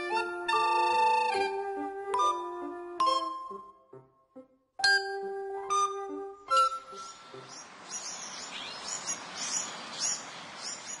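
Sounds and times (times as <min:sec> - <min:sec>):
birds chirping and singing: 0:06.5 - 0:11.0.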